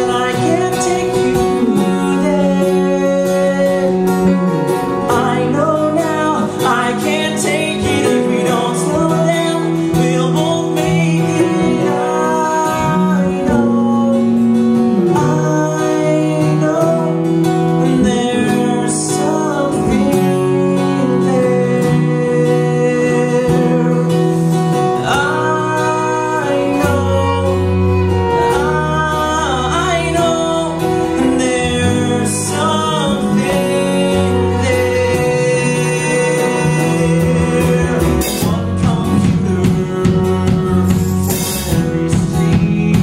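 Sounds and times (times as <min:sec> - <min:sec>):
band accompaniment: 0:00.0 - 0:43.0
men singing: 0:00.0 - 0:43.0.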